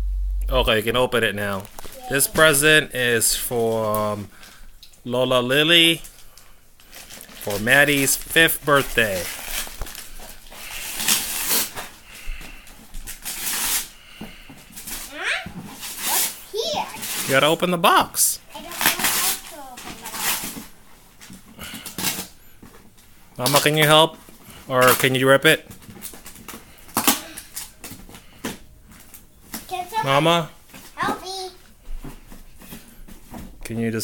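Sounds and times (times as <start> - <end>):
wrapping paper ripping: 6.8 - 14.0, 14.7 - 16.4, 17.0 - 17.5, 18.5 - 20.8.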